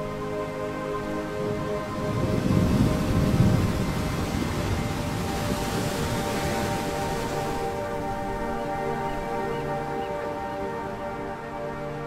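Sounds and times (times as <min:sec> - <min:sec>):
background music with sustained tones: 0:00.0 - 0:12.0
ocean wave breaking: 0:01.4 - 0:08.1.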